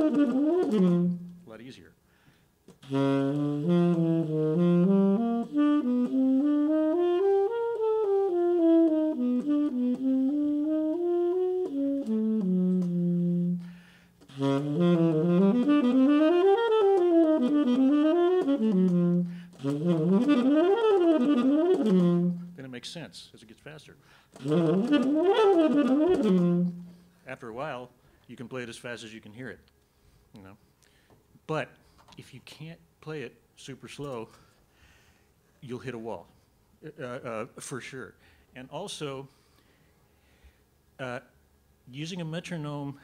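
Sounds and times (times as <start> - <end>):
solo saxophone playing: 0.0 - 1.5, 2.8 - 22.6, 24.4 - 27.1.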